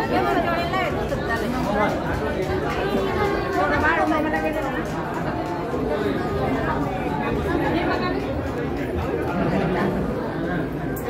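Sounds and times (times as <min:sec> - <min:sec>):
dense crowd chatter: 0:00.0 - 0:11.0.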